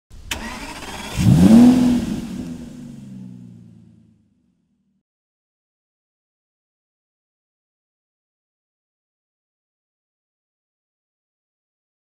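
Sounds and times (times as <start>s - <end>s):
car engine revving: 0.3s - 4.3s.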